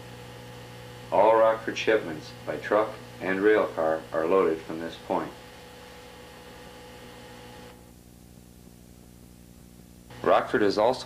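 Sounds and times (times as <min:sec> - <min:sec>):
faint electrical hum: 0:00.0 - 0:11.0
videotape hiss: 0:00.0 - 0:11.0.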